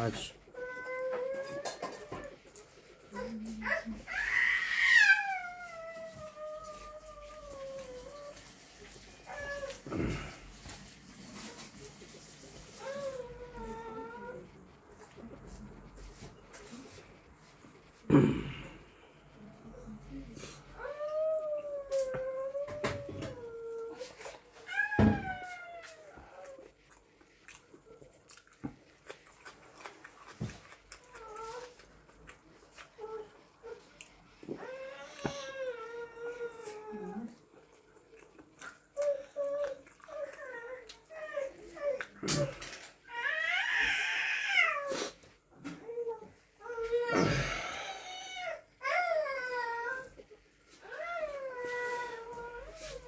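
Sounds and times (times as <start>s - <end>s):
man humming mmm: 18.1s - 18.8s.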